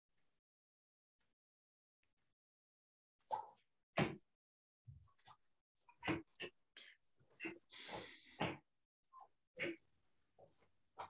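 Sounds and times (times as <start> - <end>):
forceful controlled breathing: 5.9 - 8.7, 9.6 - 10.7.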